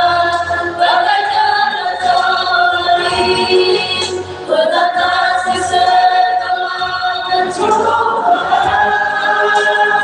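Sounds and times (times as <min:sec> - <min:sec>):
group singing a hymn: 0:00.0 - 0:10.0.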